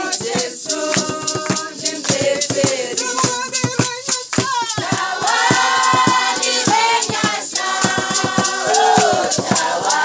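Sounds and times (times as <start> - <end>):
group singing: 0.0 - 3.4, 4.6 - 10.0
rhythmic hand clapping: 0.0 - 10.0.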